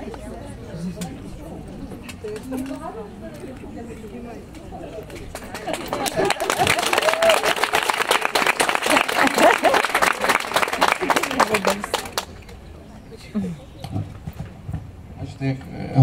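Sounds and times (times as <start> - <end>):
quiet voices: 0.0 - 14.3
voices calling out: 0.0 - 14.4
audience clapping: 5.1 - 12.5.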